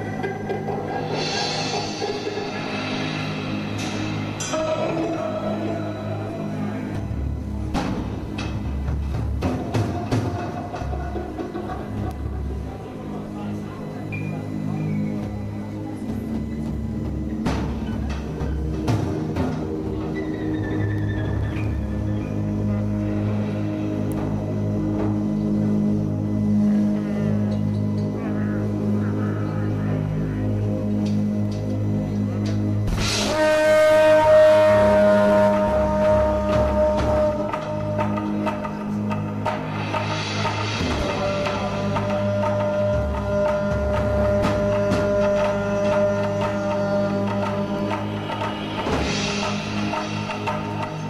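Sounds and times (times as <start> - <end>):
low didgeridoo drone: 0.0 - 51.0
sustained tones: 0.0 - 51.0.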